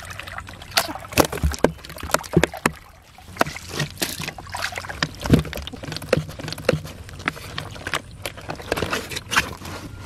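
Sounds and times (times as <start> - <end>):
fish thrashing in water: 0.0 - 9.6.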